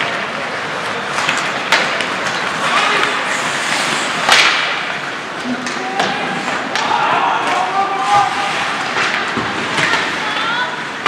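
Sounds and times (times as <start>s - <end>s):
skates scraping ice: 0.0s - 10.9s
sticks and puck clacking: 0.0s - 11.0s
puck and stick knock: 1.1s - 10.2s
players calling out: 5.4s - 10.9s.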